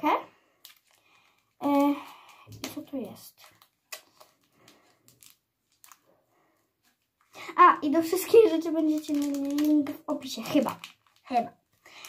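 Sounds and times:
plastic package crinkling: 0:00.6 - 0:06.1, 0:07.8 - 0:12.0.

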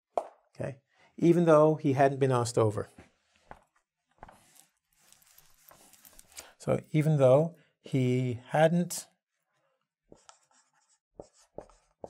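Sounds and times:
marker writing on whiteboard: 0:10.1 - 0:12.0.

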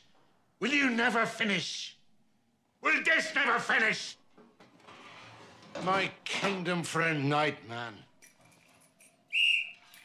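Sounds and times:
hand whistle blast: 0:09.3 - 0:10.0.

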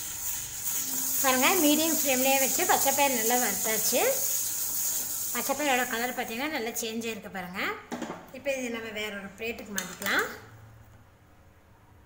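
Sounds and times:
metal utensils clinking on pan: 0:00.3 - 0:05.6
woman speaking: 0:01.2 - 0:04.3, 0:05.3 - 0:10.5.

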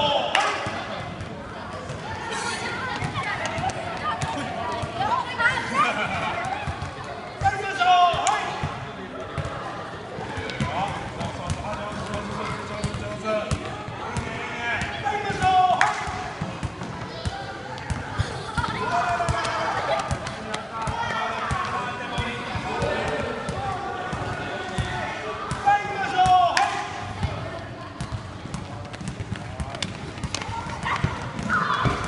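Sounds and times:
children calling out: 0:30.6 - 0:32.0.

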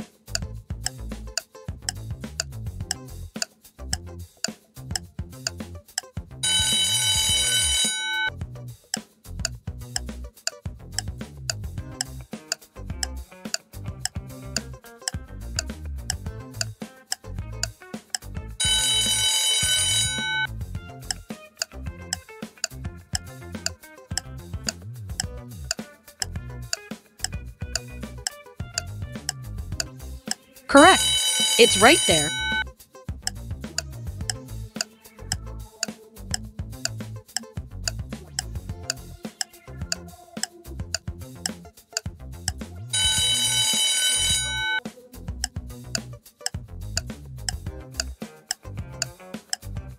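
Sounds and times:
alarm clock ringing: 0:06.4 - 0:08.3, 0:18.6 - 0:20.5, 0:30.7 - 0:32.6, 0:43.0 - 0:44.8
background music: 0:06.4 - 0:08.6, 0:09.8 - 0:26.8, 0:27.7 - 0:32.6
upbeat background music: 0:30.7 - 0:32.6.

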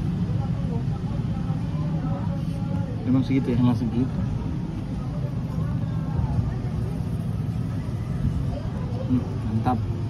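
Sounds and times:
faint voices: 0:00.0 - 0:10.0
low rumble of background noise: 0:00.0 - 0:10.0.

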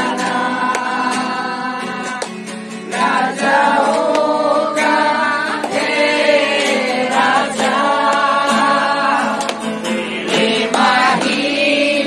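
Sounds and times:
congregation singing in chorus: 0:00.0 - 0:12.0.

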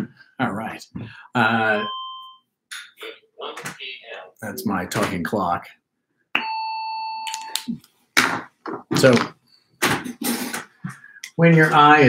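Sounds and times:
electronic clock chime: 0:01.7 - 0:02.4.

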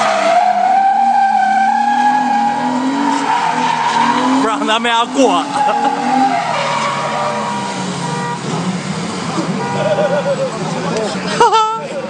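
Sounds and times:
tires squealing on pavement: 0:00.0 - 0:10.7
car engine at high revs: 0:00.0 - 0:12.0.

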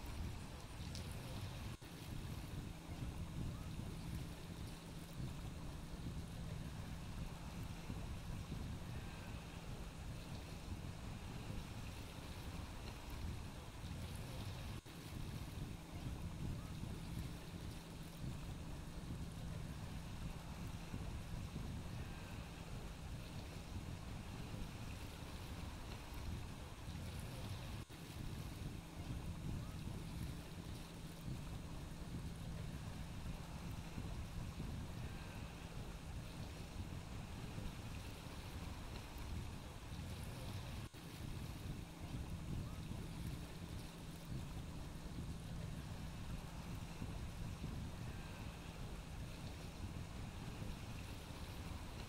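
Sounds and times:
small waves on rocky shore: 0:00.0 - 0:52.0
wind buffeting microphone: 0:00.0 - 0:52.0.

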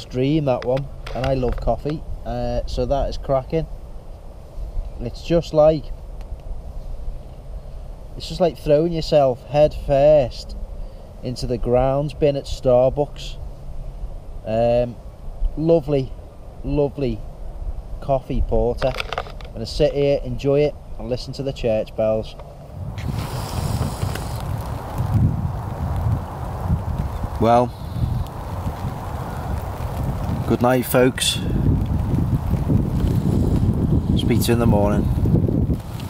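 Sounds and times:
steady low rumble: 0:00.0 - 0:36.0
wind buffeting microphone: 0:22.0 - 0:36.0.

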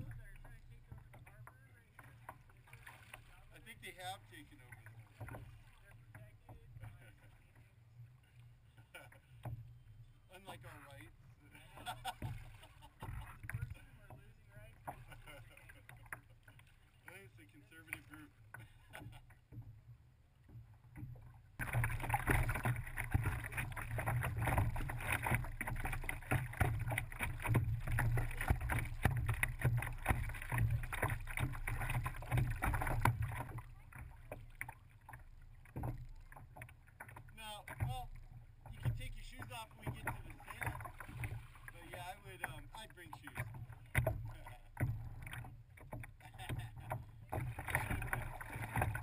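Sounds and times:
water splashing against kayak hull: 0:00.0 - 0:49.0.

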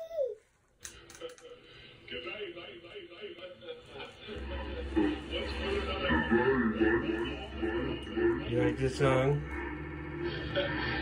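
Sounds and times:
baby babbling: 0:00.0 - 0:00.5.

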